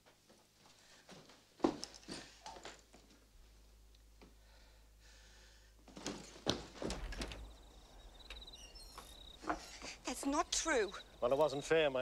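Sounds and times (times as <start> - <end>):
crickets chirping: 6.7 - 12.0.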